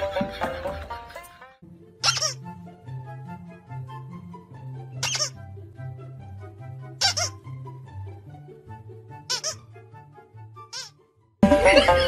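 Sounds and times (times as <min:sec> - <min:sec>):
background music: 0:00.0 - 0:12.0
squeaky toy squeaks: 0:02.0 - 0:02.4, 0:05.0 - 0:05.4, 0:07.0 - 0:07.5, 0:09.3 - 0:09.7, 0:10.6 - 0:11.0.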